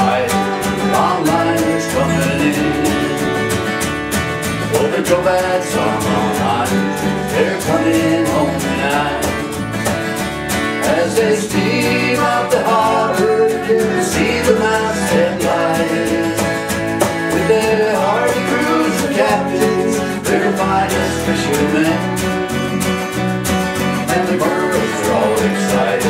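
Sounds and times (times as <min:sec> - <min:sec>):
cajon beat: 0:00.0 - 0:26.0
electric bass: 0:00.0 - 0:26.0
keyboard: 0:00.0 - 0:26.0
strummed acoustic guitar: 0:00.0 - 0:26.0
voices singing: 0:00.0 - 0:26.0.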